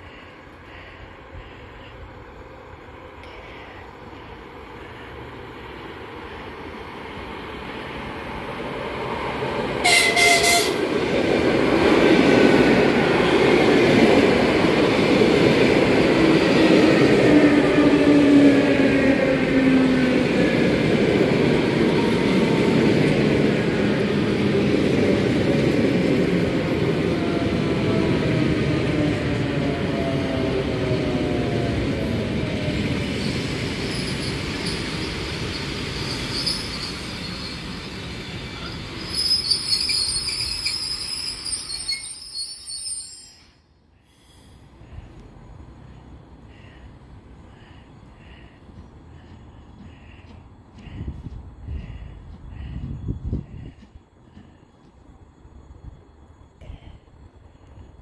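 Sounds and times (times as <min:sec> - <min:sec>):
wheel and rail noise: 0:00.0 - 0:43.6, 0:44.2 - 0:58.0
electric train running past: 0:00.0 - 0:58.0
train horn blast: 0:09.8 - 0:10.9.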